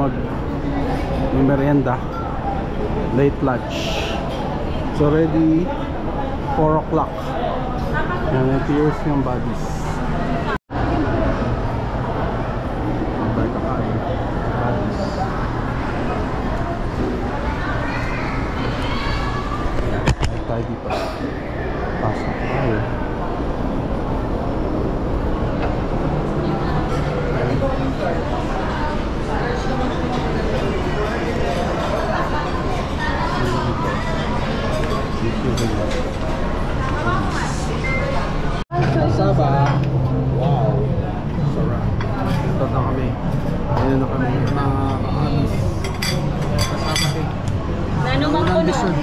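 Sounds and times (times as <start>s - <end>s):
people talking: 25.5s - 49.0s
dishes and cutlery clinking: 43.4s - 47.3s.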